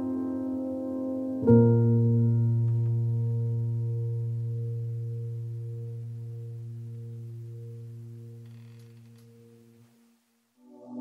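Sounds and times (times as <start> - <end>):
sustained keyboard chord: 0.0 - 9.8.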